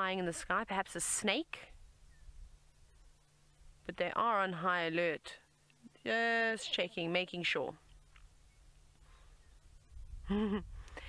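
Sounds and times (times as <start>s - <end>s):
faint chirp: 1.7s - 3.7s, 7.9s - 11.0s.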